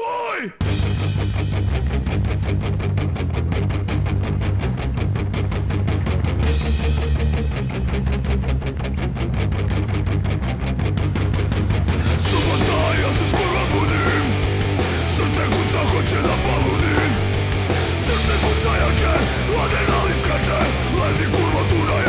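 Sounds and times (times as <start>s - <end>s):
punk band playing fast: 0.6s - 22.0s.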